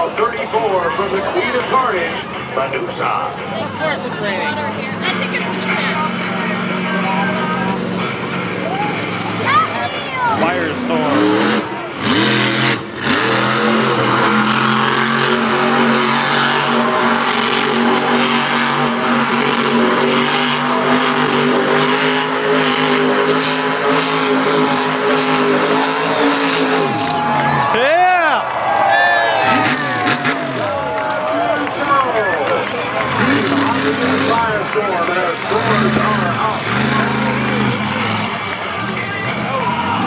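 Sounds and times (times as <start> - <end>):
truck engine revving: 0.0 - 28.5, 29.2 - 40.0.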